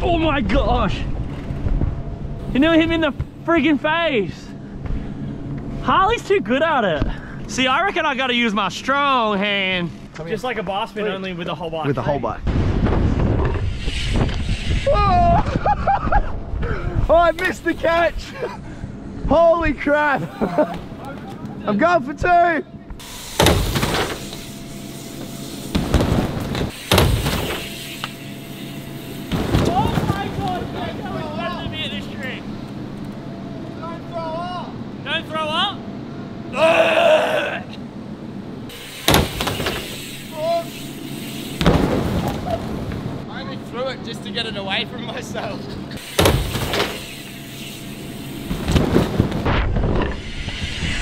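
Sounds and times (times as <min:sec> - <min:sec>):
bike thumping on ramp and airbag: 0:01.2 - 0:03.5, 0:12.4 - 0:18.3, 0:22.9 - 0:32.4, 0:38.7 - 0:43.4, 0:45.7 - 0:51.0
people shouting and whooping: 0:14.8 - 0:15.7
rushing noise: 0:46.0 - 0:51.0.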